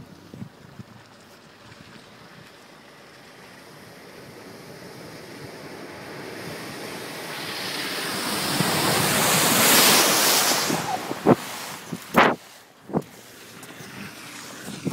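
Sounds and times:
vehicle splashing through water: 0.0 - 14.9.

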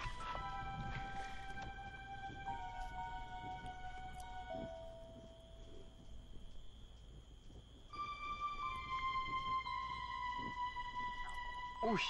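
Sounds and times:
soft background music note: 0.0 - 12.0.

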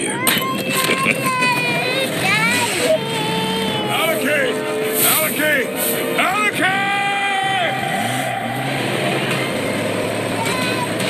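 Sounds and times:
long held vocal cry: 0.0 - 5.8
car engine running: 0.0 - 11.0
dense rushing noise: 3.9 - 11.0.

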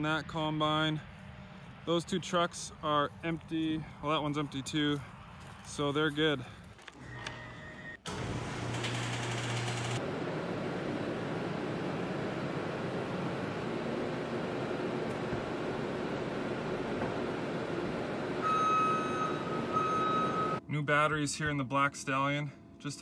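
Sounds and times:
door motor humming: 7.0 - 10.0
skid steer engine running: 8.1 - 10.2
backup alarm beeping: 18.4 - 20.6.

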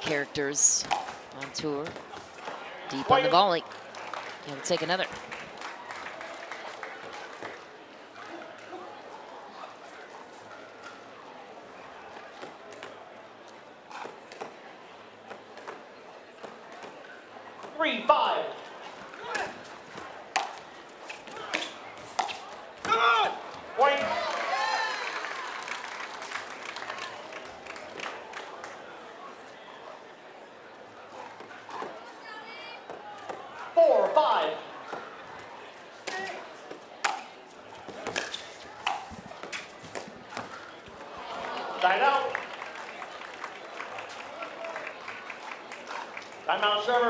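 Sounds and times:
paddles hitting plastic ball: 19.2 - 23.0, 36.0 - 37.3, 37.9 - 40.6.

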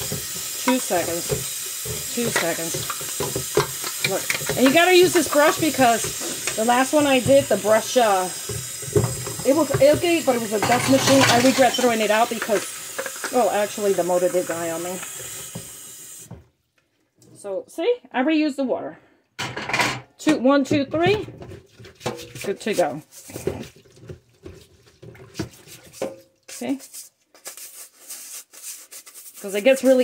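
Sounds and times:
dish brush scrubbing: 0.0 - 16.3, 20.7 - 30.0
water splashing in sink: 0.0 - 16.5, 20.5 - 27.0.

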